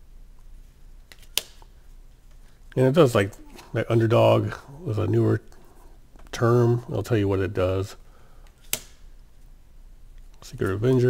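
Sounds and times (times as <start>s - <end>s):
trading cards handled: 1.0s - 3.8s.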